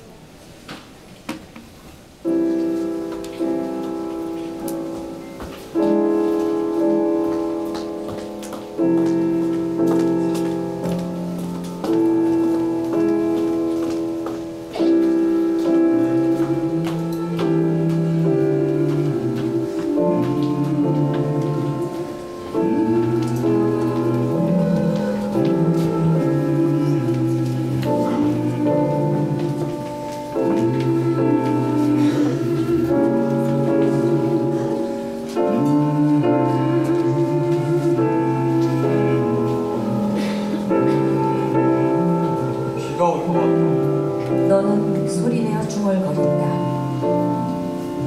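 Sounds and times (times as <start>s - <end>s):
grand piano chords: 1.7s - 48.0s.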